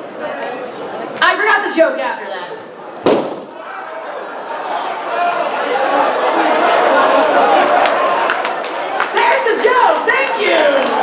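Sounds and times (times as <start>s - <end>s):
balloon bursting with echo: 3.0s - 3.6s.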